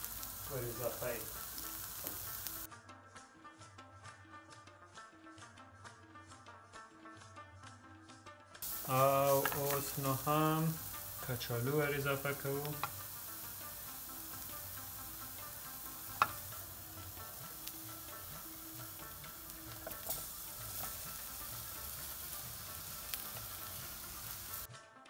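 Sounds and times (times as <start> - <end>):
filling sizzling in frying pan: 0.0 - 2.7, 8.6 - 24.7
spatula stirring and scraping: 10.9 - 24.6.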